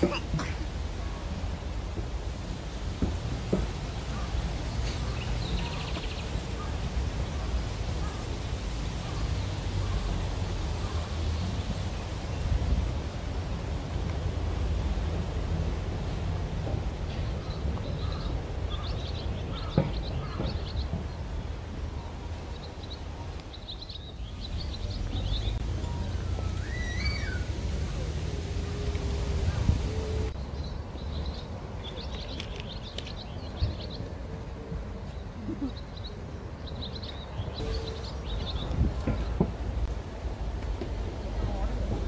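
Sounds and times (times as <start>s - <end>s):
low outdoor rumble: 0.0s - 42.0s
birds chirping: 1.0s - 13.2s, 17.1s - 39.5s.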